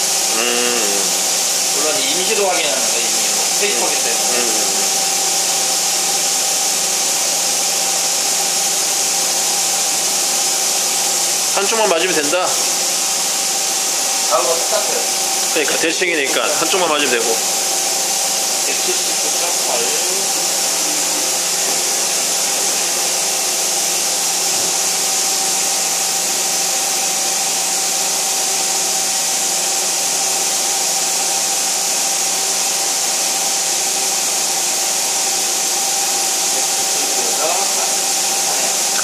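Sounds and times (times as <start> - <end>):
machining center whirring hiss: 0.0 - 39.0
mid-pitched machine whine: 0.0 - 39.0.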